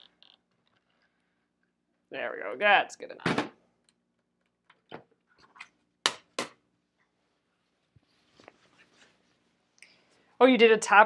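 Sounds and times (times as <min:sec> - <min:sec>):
fabric rustling: 0:07.1 - 0:09.8.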